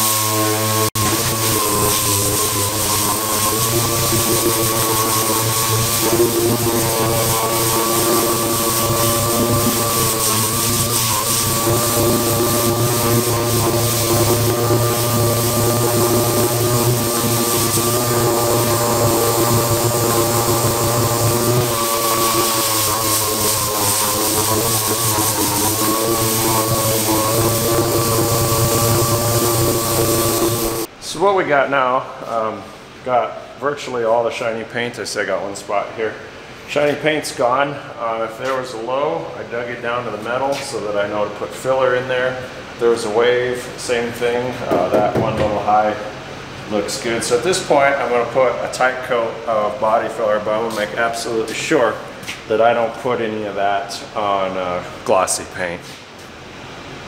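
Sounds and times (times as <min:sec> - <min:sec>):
exhaust air hissing: 0:00.0 - 0:30.9
pneumatic sander whining: 0:00.0 - 0:30.9.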